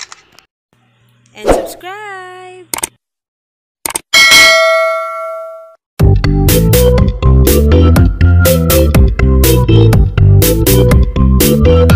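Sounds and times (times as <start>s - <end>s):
notification bell ding: 4.2s - 5.8s.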